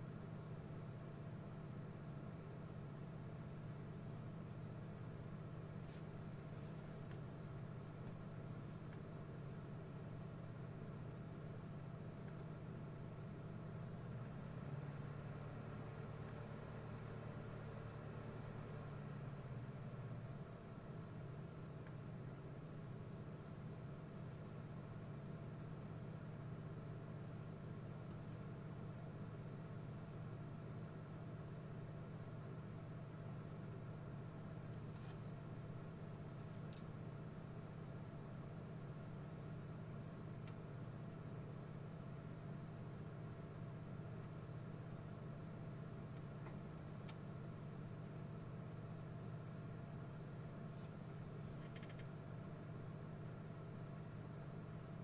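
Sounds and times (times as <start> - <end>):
low hum with light hiss: 0.0 - 55.0.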